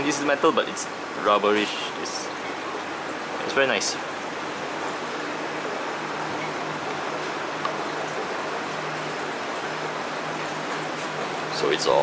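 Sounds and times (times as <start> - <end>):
water rushing through aquarium equipment: 0.0 - 12.0.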